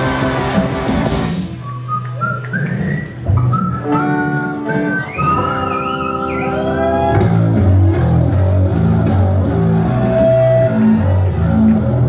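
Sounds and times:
live rock band playing: 0.0s - 1.9s, 2.7s - 12.0s
whistle-like lead line: 1.5s - 6.9s.

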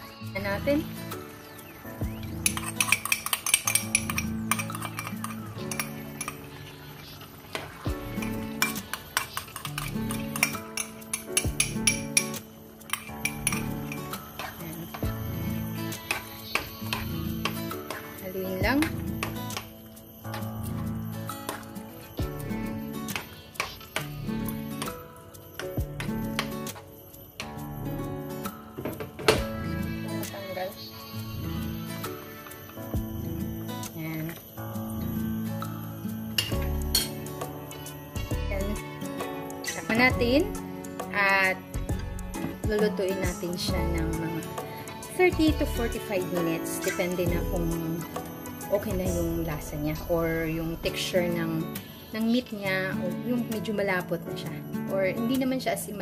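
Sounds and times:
background music with steady beat: 0.0s - 56.0s.

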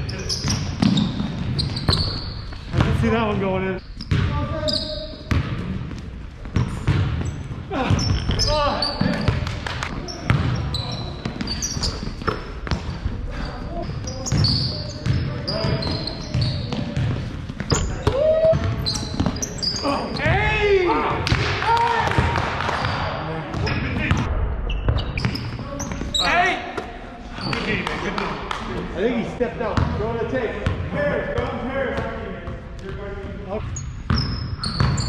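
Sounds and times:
sneakers squeaking: 0.0s - 21.5s, 22.2s - 27.8s, 30.6s - 35.0s
players' voices: 0.0s - 34.8s
basketball bouncing on wooden floor: 0.4s - 3.1s, 4.0s - 4.4s, 10.2s - 13.0s, 34.1s - 35.0s.

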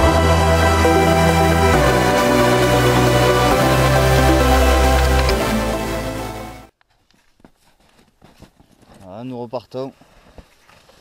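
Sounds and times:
electronic background music: 0.0s - 6.7s
footsteps crunching on snow: 6.9s - 11.0s.

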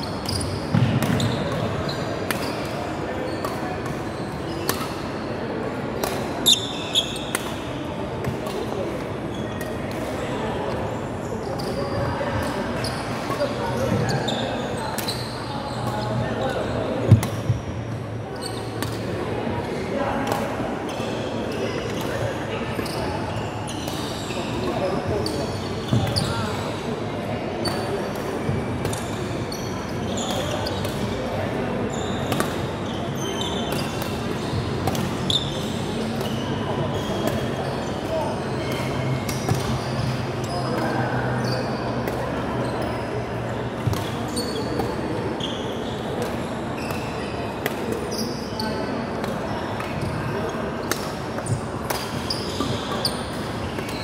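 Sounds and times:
shoes squeaking on court floor: 0.0s - 27.0s, 27.6s - 54.0s
murmur of voices: 0.0s - 54.0s
racket hitting shuttlecock: 6.0s - 6.3s.

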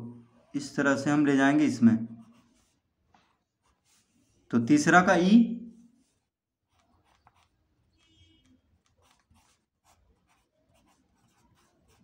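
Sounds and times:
pencil scratching on paper: 2.1s - 4.4s, 6.0s - 12.0s
person speaking: 3.9s - 6.2s.

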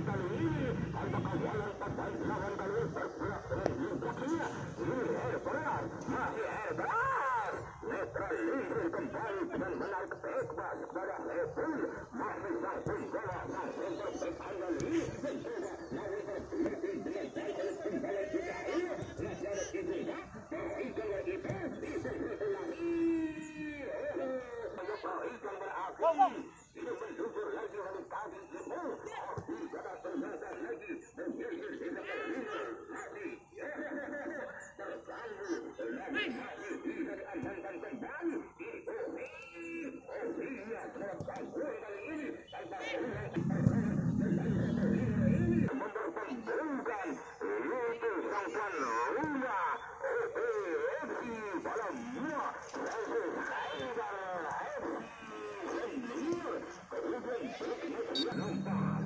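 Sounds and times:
people chattering and laughing: 0.0s - 59.0s.

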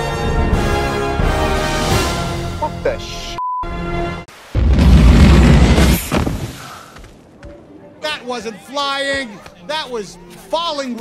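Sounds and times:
explosion boom with deep rumble: 4.6s - 7.4s.

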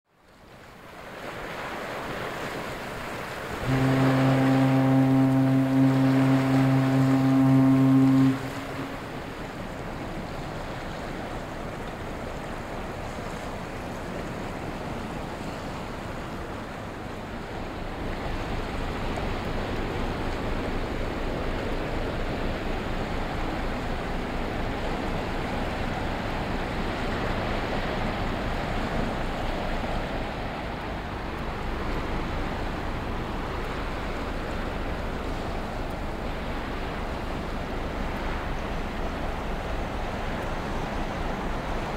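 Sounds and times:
wind: 0.0s - 41.9s
low rumble of passing ship: 0.1s - 41.9s
river water hissing: 0.5s - 41.9s
ship's horn blast: 3.4s - 12.5s, 14.8s - 41.9s.

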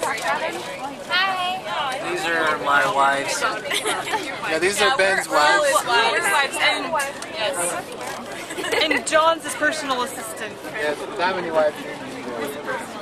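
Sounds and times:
overlapping chatter of passengers: 0.0s - 13.0s.

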